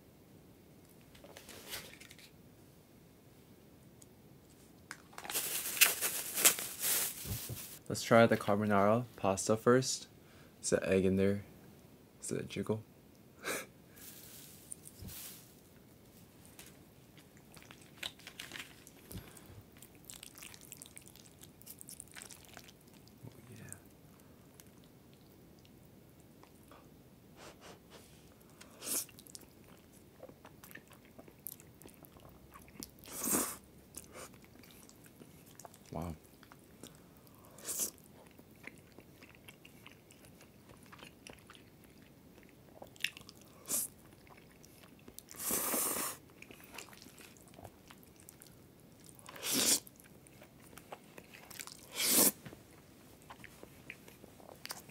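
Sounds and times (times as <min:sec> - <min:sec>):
quiet chewing: 0:16.6 - 0:26.9, 0:28.3 - 0:54.9
noodles slurped: 0:49.2 - 0:49.9, 0:51.0 - 0:52.4.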